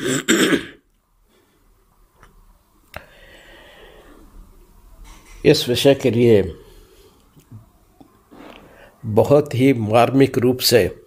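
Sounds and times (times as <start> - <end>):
man clearing his throat: 0.0 - 0.8.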